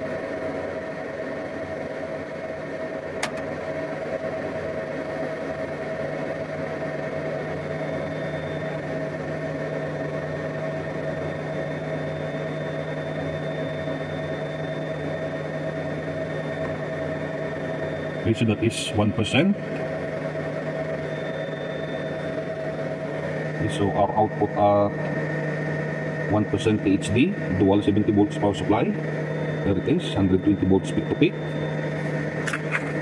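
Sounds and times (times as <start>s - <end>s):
electrical hum: 0.0s - 33.0s
fan whir: 3.0s - 33.0s
sharp click: 32.4s - 32.9s.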